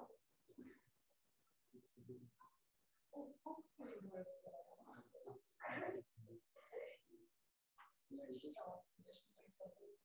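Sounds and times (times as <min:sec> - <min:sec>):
faint indistinct talking: 0:00.0 - 0:10.0.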